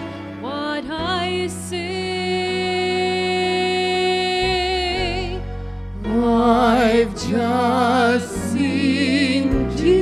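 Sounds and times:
soft instrumental accompaniment: 0.0s - 10.0s.

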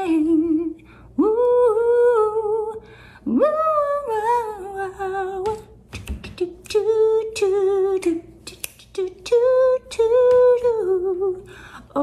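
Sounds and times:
woman singing wordless notes: 0.0s - 12.0s.

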